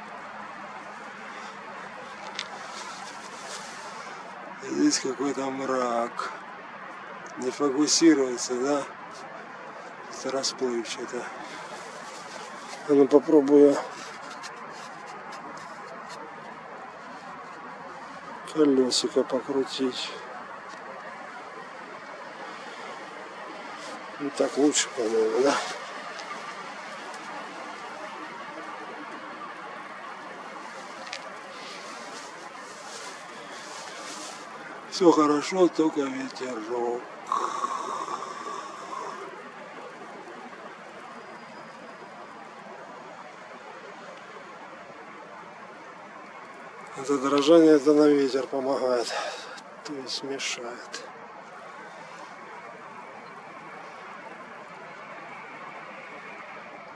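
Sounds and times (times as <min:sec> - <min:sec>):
steady background hiss: 0:00.0 - 0:56.9.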